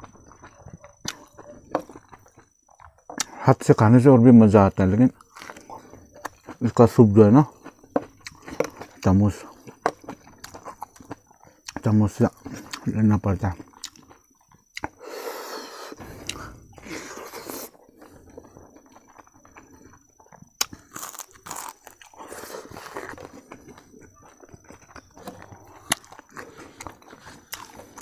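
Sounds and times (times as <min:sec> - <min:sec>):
wet chewing and mouth sounds: 0:00.0 - 0:03.9, 0:05.0 - 0:28.0.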